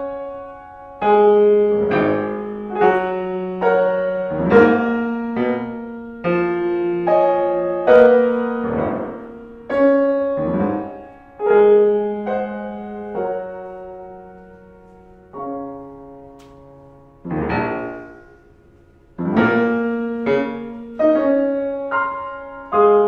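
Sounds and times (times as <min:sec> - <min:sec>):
grand piano chords and runs: 0:00.0 - 0:23.0.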